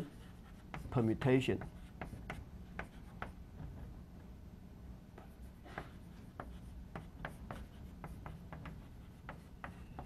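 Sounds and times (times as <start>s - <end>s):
chalk tapping and scraping: 0.0s - 3.9s, 5.1s - 10.0s.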